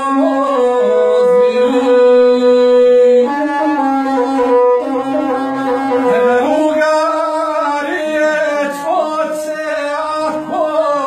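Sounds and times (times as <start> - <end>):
bowed fiddle melody: 0.0 - 11.0.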